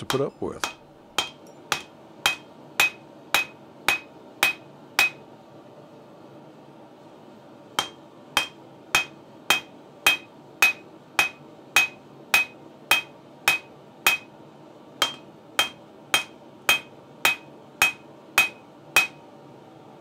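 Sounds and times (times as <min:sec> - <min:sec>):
hammer blows on anvil: 0:00.0 - 0:05.2, 0:07.8 - 0:14.3, 0:15.0 - 0:19.2.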